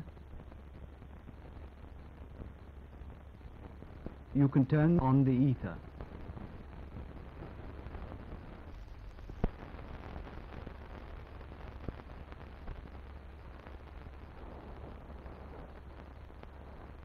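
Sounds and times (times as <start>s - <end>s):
crackles: 0.0s - 17.0s
film soundtrack hiss: 0.0s - 17.0s.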